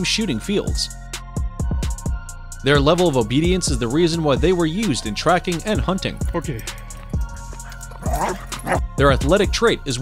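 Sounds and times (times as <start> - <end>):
background music: 0.0 - 10.0
dog barking: 7.6 - 8.9.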